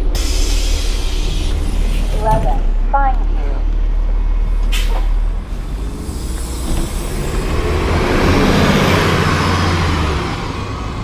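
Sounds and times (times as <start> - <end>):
bus driving past: 0.0 - 11.0.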